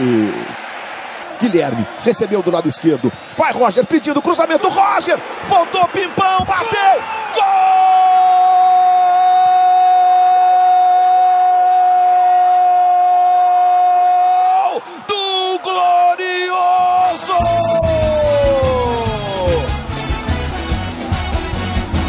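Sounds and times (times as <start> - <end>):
music with a beat: 17.8 - 22.0.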